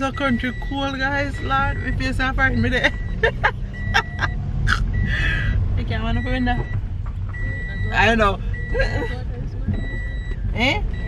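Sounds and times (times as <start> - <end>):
passengers chatting and laughing: 0.0 - 10.9
car cabin road and engine rumble: 0.0 - 11.0.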